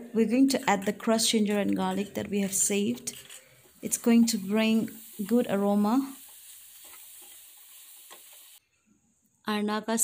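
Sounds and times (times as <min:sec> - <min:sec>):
pork sizzling in a pan: 0:03.7 - 0:08.6
spatula scraping a pan: 0:06.2 - 0:08.6.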